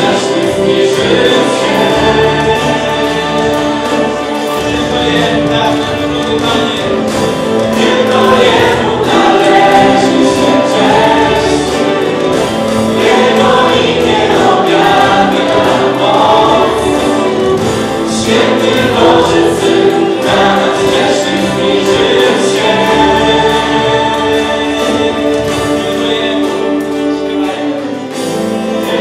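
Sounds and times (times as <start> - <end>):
group singing worship song: 0.0 - 29.0
instrumental backing: 0.0 - 29.0.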